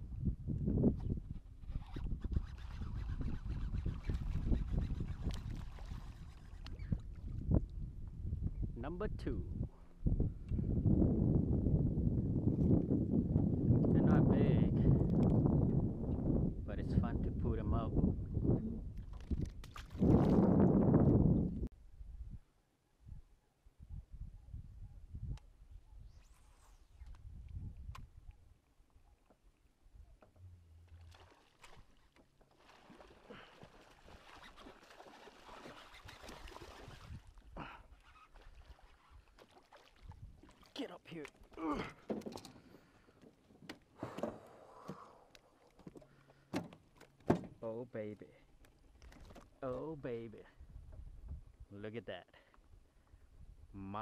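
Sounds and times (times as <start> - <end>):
wind buffeting microphone: 0.0 - 22.4, 26.8 - 28.3, 50.6 - 51.7
brief squeak: 1.0 - 7.1
low rumble: 30.3 - 31.3.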